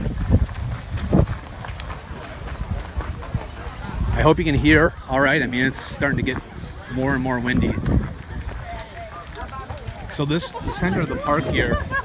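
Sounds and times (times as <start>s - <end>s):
crowd voices: 0.0s - 12.0s
footsteps on gravel: 0.0s - 12.0s
wind buffeting microphone: 0.0s - 12.0s.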